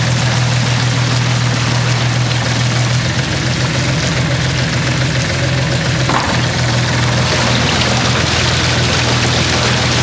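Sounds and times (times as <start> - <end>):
churning water: 0.0 - 10.0
outboard motor humming: 0.0 - 10.0.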